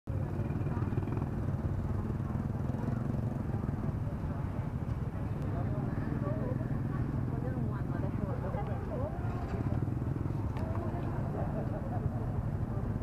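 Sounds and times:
motorbike engines idling: 0.1s - 13.0s
people talking: 0.1s - 13.0s.

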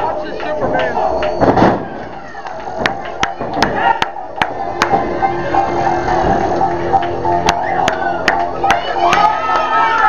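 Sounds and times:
murmuring crowd voices: 0.0s - 10.0s
hand claps: 7.0s - 9.7s.

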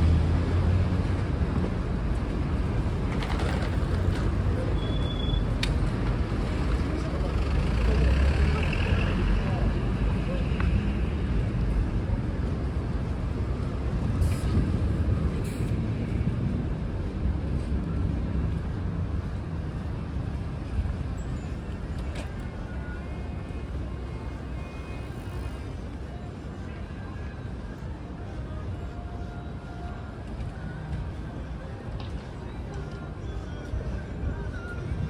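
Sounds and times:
city traffic rumble: 0.0s - 35.0s.

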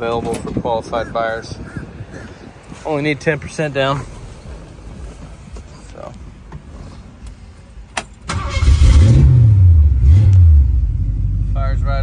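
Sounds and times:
car engine starting and idling: 6.4s - 12.0s.

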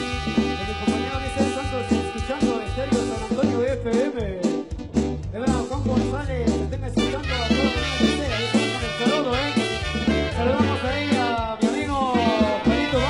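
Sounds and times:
bass guitar: 0.0s - 13.0s
marimba dance music: 0.0s - 13.0s.

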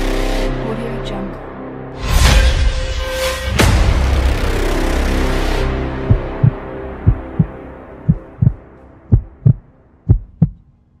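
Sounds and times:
low music drone: 0.0s - 11.0s
heartbeat thumps: 6.0s - 10.6s.

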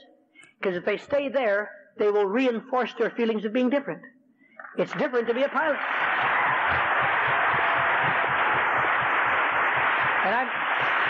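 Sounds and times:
audience applauding: 4.8s - 11.0s.

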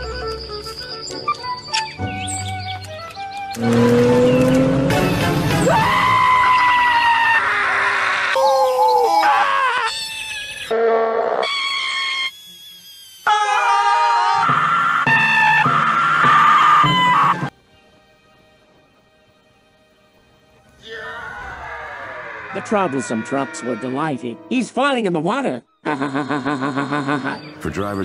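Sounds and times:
cartoon characters screaming: 5.6s - 12.4s, 13.2s - 17.4s, 20.8s - 24.0s.

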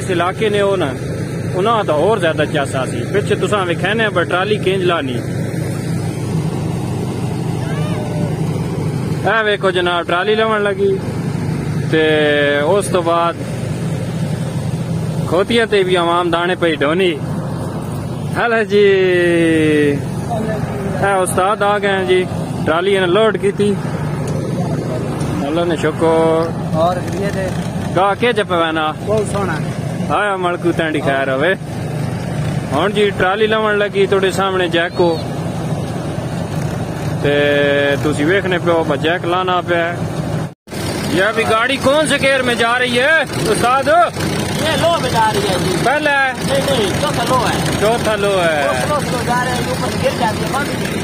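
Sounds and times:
tractor diesel engine running: 0.0s - 51.0s
wheat thresher running: 40.7s - 51.0s.

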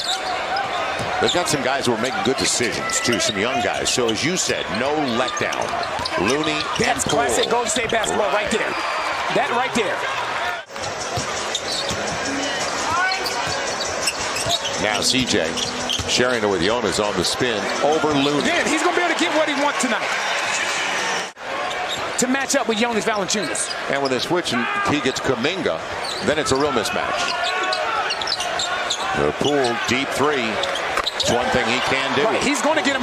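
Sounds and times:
crowd noise: 0.0s - 33.0s
shoe squeaks: 2.7s - 4.4s, 5.0s - 8.2s, 10.8s - 16.7s, 26.0s - 29.9s, 30.5s - 31.4s.

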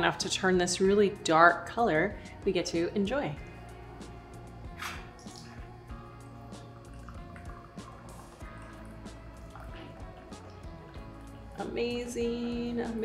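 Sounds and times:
background music: 0.0s - 13.0s
splashing and dripping: 4.7s - 11.7s
tea pouring into glass mug: 5.0s - 11.6s.

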